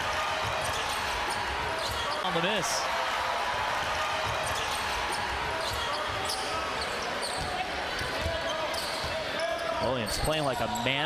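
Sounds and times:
arena crowd murmur: 0:00.0 - 0:11.0.

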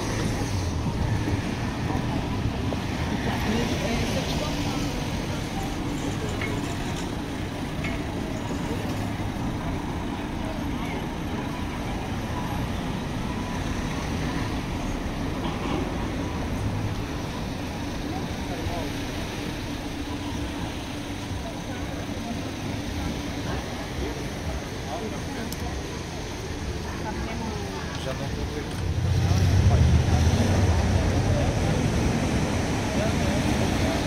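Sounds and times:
passing car traffic: 0:00.0 - 0:34.0
people chattering: 0:00.0 - 0:34.0.

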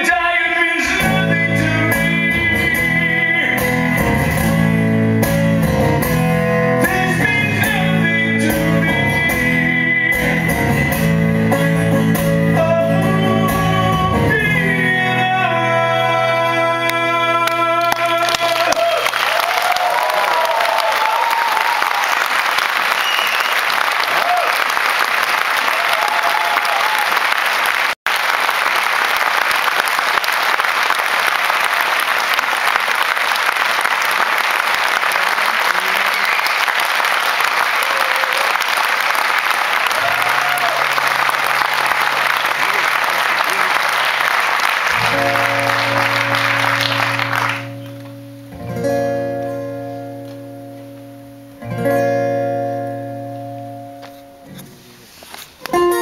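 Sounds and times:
acoustic guitar chords: 0:00.9 - 0:18.3, 0:44.9 - 0:56.0
audience applauding: 0:16.9 - 0:48.4.

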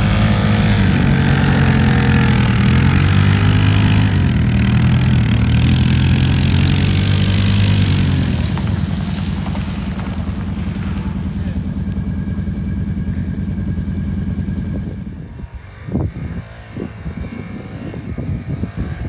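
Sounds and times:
quad engine revving in snow: 0:00.0 - 0:19.0.

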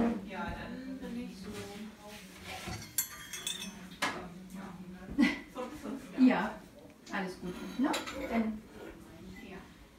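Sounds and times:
china cup and saucer clinking: 0:02.7 - 0:03.9.

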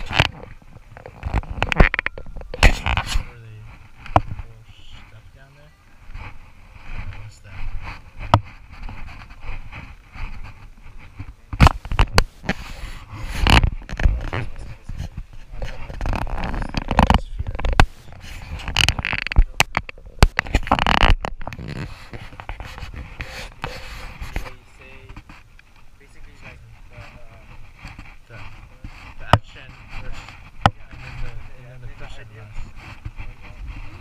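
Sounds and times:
knocks and rustling: 0:00.0 - 0:05.2, 0:06.0 - 0:34.0.

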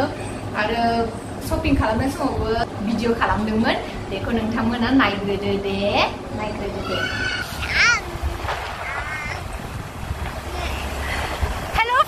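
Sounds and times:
woman's voice: 0:00.0 - 0:07.0, 0:11.7 - 0:12.0
wind buffeting microphone: 0:06.9 - 0:12.0.

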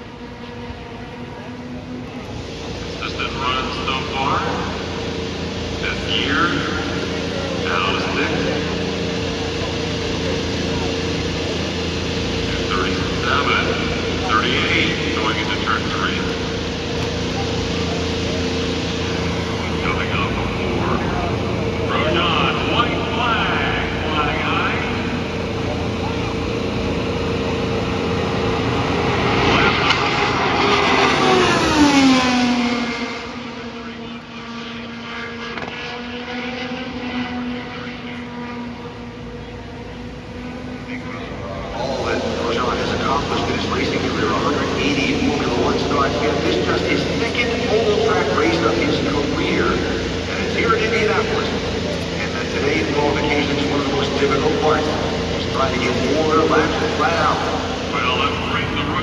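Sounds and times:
race car engine passing: 0:00.0 - 0:59.0.

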